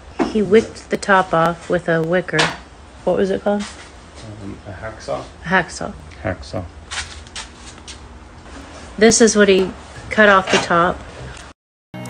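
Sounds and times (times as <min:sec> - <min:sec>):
steady low hum: 0:00.0 - 0:11.5.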